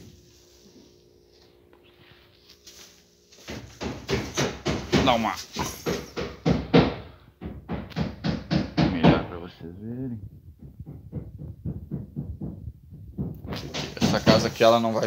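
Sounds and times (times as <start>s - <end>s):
person talking: 8.9s - 10.4s.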